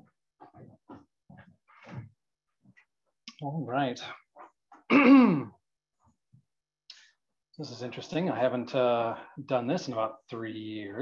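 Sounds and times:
person clearing throat: 0:04.9 - 0:05.6.

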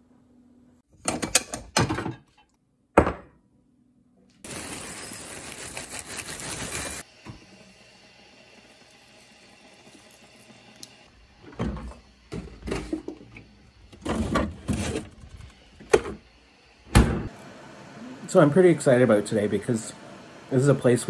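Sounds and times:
dry cereal pouring into bowl: 0:04.5 - 0:07.0
milk pouring: 0:08.1 - 0:11.0.

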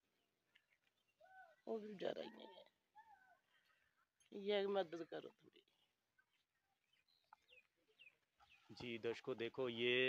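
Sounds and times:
faint bird calls: 0:00.5 - 0:04.1.

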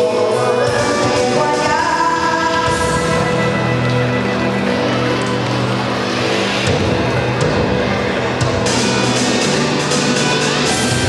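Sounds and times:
instrumental karaoke backing music: 0:00.0 - 0:11.0.

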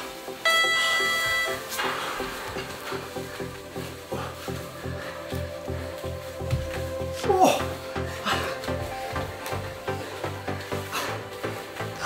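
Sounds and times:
electronic dance music: 0:00.0 - 0:02.6
ringing tone: 0:00.4 - 0:01.7.

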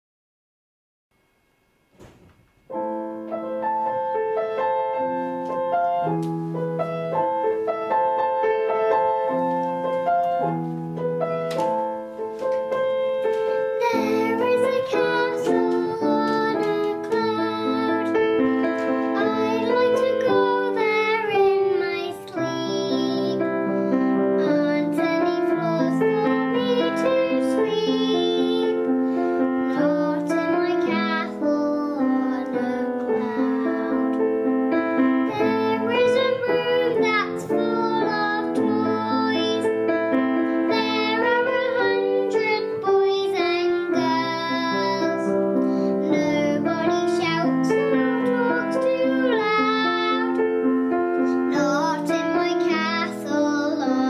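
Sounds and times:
piano accompaniment: 0:01.5 - 0:54.0
held instrumental notes: 0:02.0 - 0:53.9
child singing: 0:13.1 - 0:54.0.

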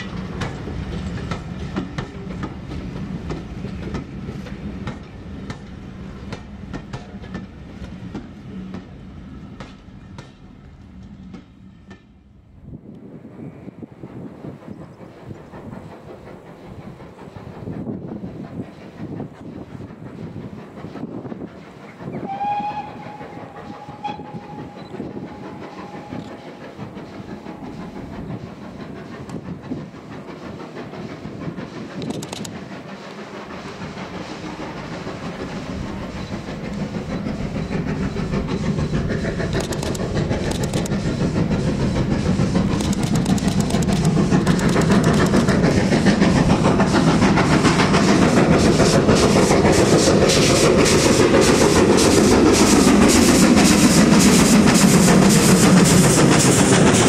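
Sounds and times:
steam locomotive exhaust beats: 0:00.0 - 0:57.0
wheels clattering on rails: 0:14.5 - 0:57.0
distant steam whistle: 0:22.0 - 0:27.9.

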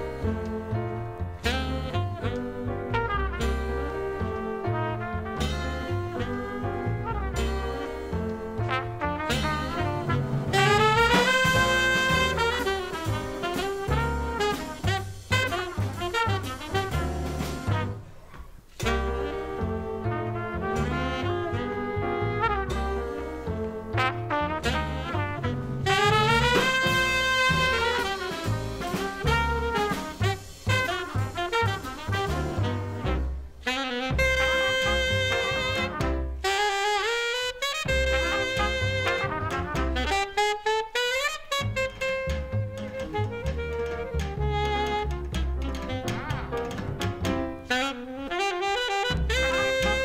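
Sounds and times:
plucked double bass: 0:00.0 - 0:18.0, 0:18.8 - 0:36.4, 0:37.9 - 0:40.3, 0:41.6 - 0:47.7, 0:49.1 - 0:50.0
alto saxophone: 0:00.0 - 0:50.0
drums: 0:00.0 - 0:50.0
jazz band playing: 0:00.0 - 0:50.0
piano: 0:00.0 - 0:50.0
trumpet: 0:00.0 - 0:50.0.

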